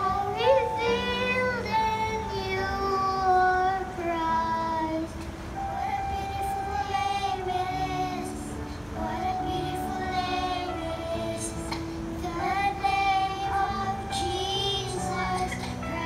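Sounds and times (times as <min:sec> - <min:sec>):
children singing: 0:00.0 - 0:05.0, 0:05.6 - 0:16.0.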